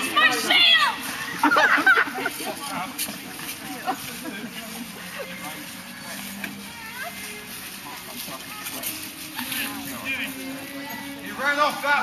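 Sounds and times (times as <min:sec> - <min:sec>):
distant people talking: 0:00.0 - 0:12.0.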